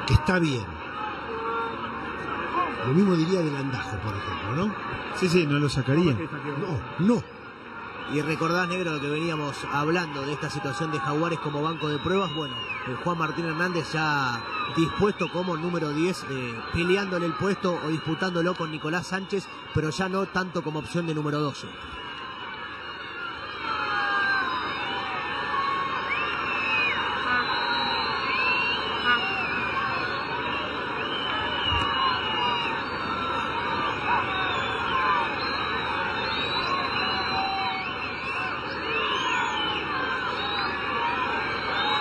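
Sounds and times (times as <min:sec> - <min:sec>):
crowd shouting: 0:00.0 - 0:42.0
crowd whistling: 0:00.0 - 0:42.0
stadium crowd din: 0:00.0 - 0:42.0.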